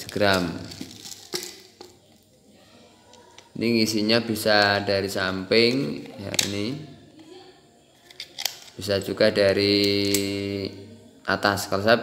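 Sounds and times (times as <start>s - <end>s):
plastic bottle set on table: 0.0s - 2.2s.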